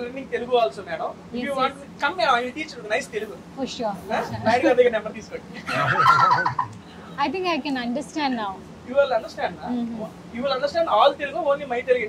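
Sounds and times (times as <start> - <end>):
high-pitched laughter: 5.6 - 6.8.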